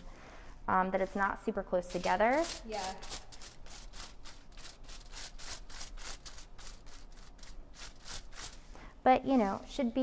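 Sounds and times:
brush strokes on hair and foil: 0:01.9 - 0:08.7.

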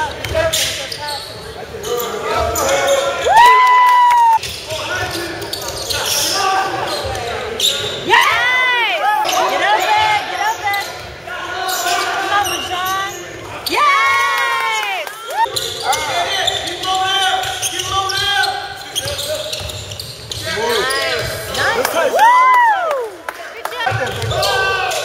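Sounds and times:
sneakers squeaking on hardwood: 0:00.0 - 0:03.2, 0:04.4 - 0:08.1, 0:15.4 - 0:21.8, 0:23.9 - 0:25.0
voices echoing in a hall: 0:00.0 - 0:25.0.

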